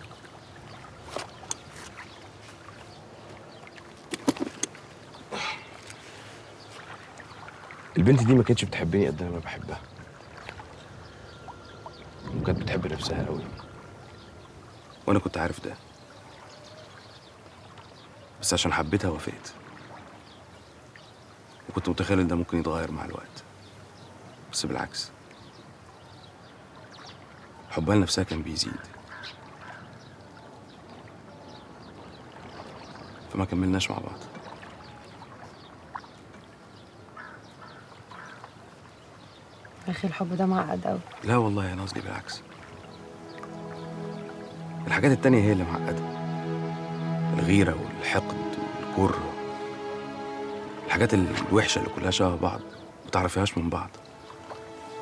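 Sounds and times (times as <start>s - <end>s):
faint bird calls: 0.0s - 7.9s, 9.4s - 18.7s, 28.6s - 44.9s
faint outdoor background: 0.0s - 55.0s
moving water: 0.0s - 55.0s.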